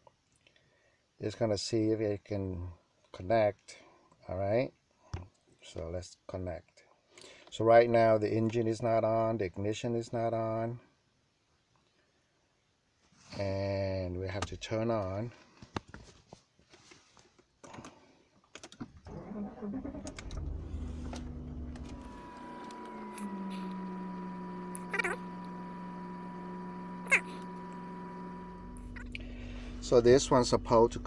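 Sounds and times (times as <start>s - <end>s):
ignition clicks: 19.1s - 29.3s
car engine starting and idling: 19.1s - 31.0s
short high blips: 22.0s - 30.1s.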